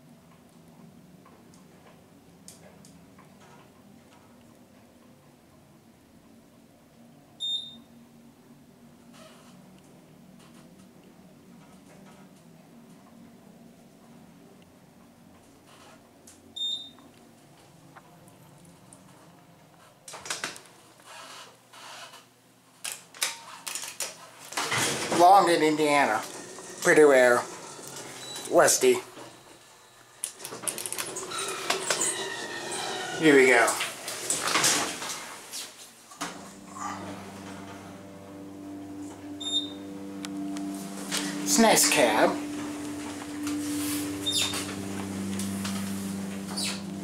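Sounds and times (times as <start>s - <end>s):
elevator low hum: 24.8s - 47.0s
short high beep: 39.4s - 40.0s, 40.7s - 45.0s.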